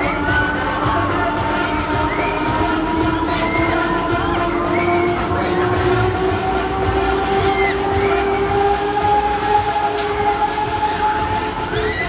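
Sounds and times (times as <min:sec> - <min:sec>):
funfair music: 0:00.0 - 0:12.0
people shouting: 0:00.0 - 0:12.0
steady drone rising in pitch: 0:00.0 - 0:12.0.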